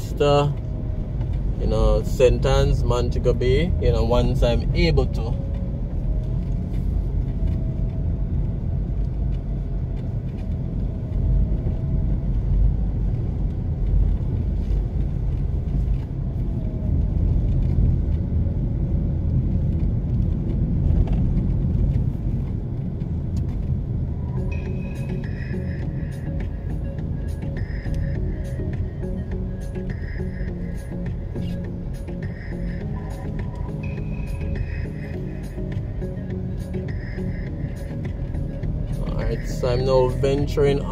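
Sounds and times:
road traffic rumble: 0.0s - 40.9s.

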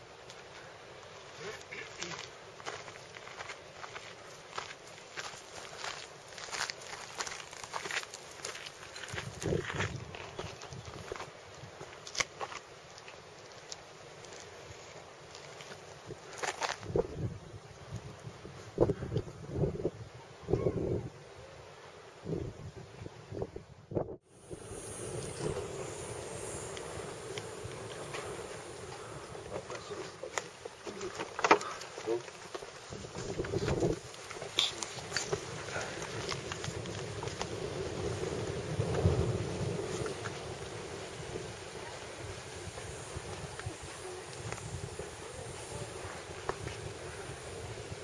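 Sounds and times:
wind buffeting microphone: 9.0s - 11.8s, 16.0s - 21.3s, 22.2s - 30.8s, 32.8s - 48.0s
low rumble: 24.4s - 30.3s.

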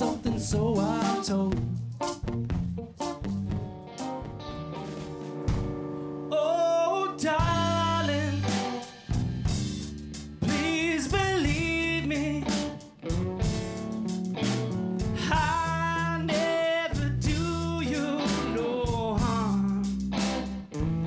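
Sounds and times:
male vocal: 0.0s - 1.8s, 6.3s - 8.8s, 10.4s - 12.8s, 15.2s - 20.0s
live rock band playing: 0.0s - 21.0s.

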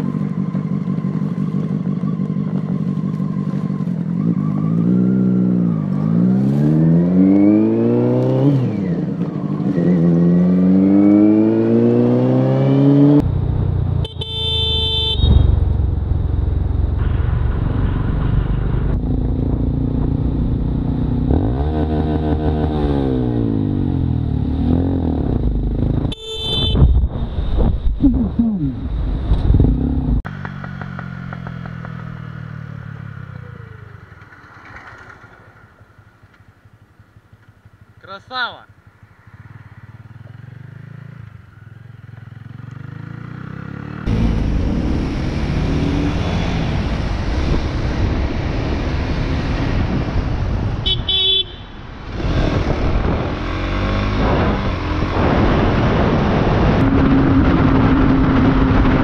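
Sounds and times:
motorcycle engine accelerating: 0.0s - 38.0s, 38.8s - 59.0s
car horn blasts: 14.0s - 15.6s, 26.1s - 27.0s, 50.8s - 51.9s.

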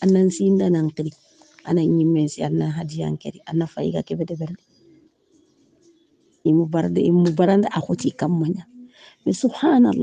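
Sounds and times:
person speaking: 0.0s - 1.1s, 6.5s - 8.6s, 9.3s - 10.0s
faint low background sound: 0.0s - 10.0s.

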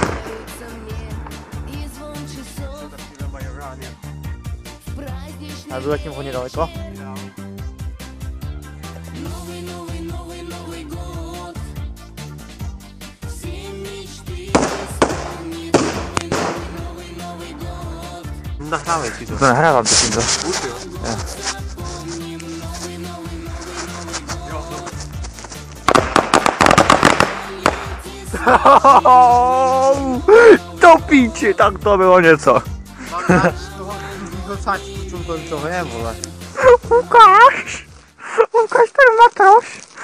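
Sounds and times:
firework bang: 0.0s - 2.0s, 14.6s - 16.8s, 25.9s - 28.1s
music with a steady beat: 6.6s - 18.8s, 20.2s - 37.2s.

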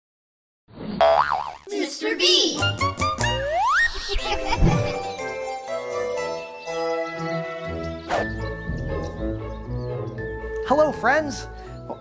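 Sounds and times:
cartoon boing sound effect: 1.0s - 1.6s, 3.4s - 4.8s.

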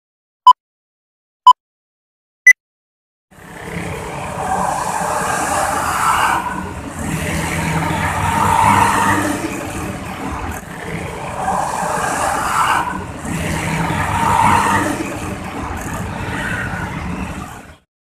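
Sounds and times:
car and motorbike traffic: 3.3s - 17.8s
buses accelerating: 3.4s - 17.9s.

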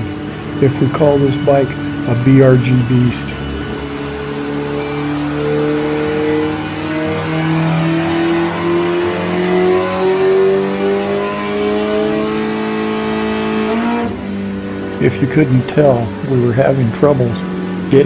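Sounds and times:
motorcycle engine revving under load: 0.0s - 18.0s.

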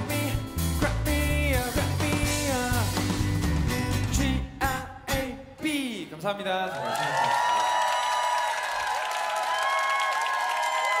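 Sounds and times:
audience applauding and cheering: 6.6s - 11.0s.

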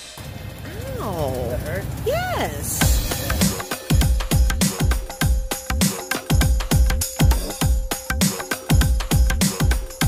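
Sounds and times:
low steady rumble: 0.2s - 3.6s.

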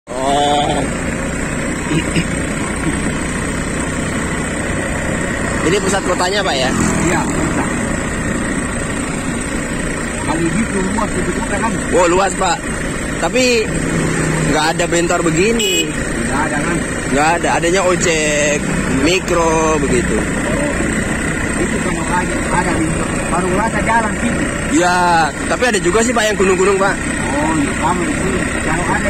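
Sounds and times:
motorcycle engine and road noise: 0.1s - 29.0s.

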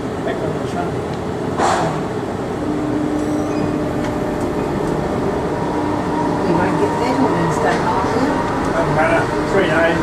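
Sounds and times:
monorail train running: 0.0s - 10.0s
steady low hum: 0.0s - 10.0s.

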